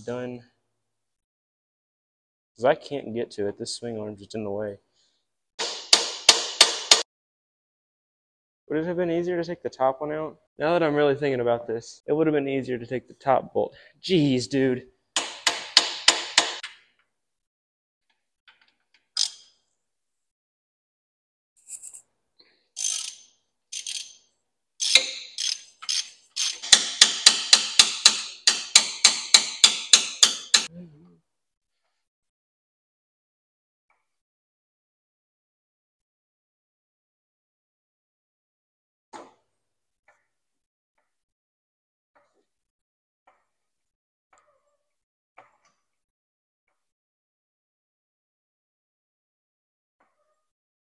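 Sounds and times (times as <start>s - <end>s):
socket ratchet clicking: 22.8s - 24.2s, 24.8s - 30.7s.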